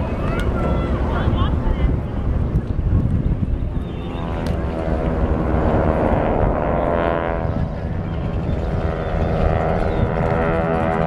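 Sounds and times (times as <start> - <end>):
propeller airplanes droning past: 0.0 - 11.0.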